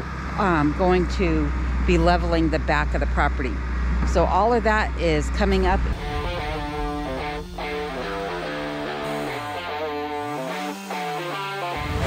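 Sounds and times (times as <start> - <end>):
sliding low bass line: 0.2 - 10.4
plucked guitar-like notes: 5.6 - 12.0.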